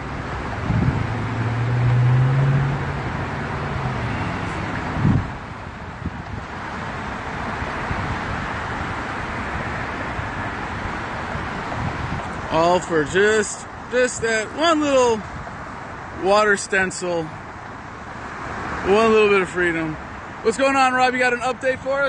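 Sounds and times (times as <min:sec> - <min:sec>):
vehicle low engine hum: 0:00.0 - 0:20.8
highway traffic rushing: 0:00.0 - 0:22.0.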